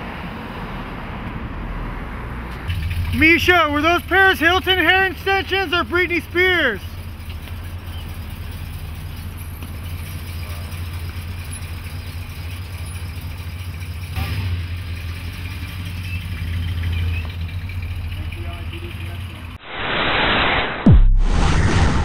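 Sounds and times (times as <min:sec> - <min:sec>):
car engine idling: 0:02.6 - 0:19.6
brief louder noise: 0:19.6 - 0:22.0.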